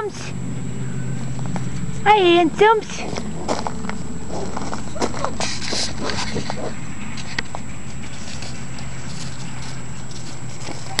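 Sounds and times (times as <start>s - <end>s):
steady low rumble: 0.0s - 11.0s
puppy paws on gravel: 1.1s - 11.0s.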